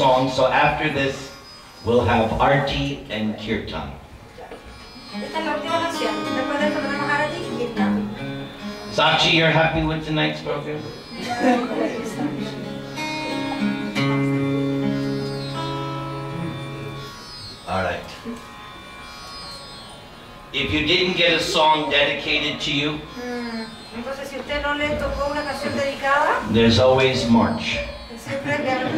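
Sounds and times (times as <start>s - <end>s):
acoustic guitar playing: 4.1s - 28.9s.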